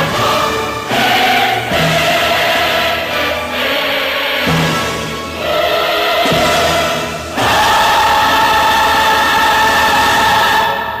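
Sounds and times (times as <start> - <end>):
choir singing a held chord: 0.0 - 11.0.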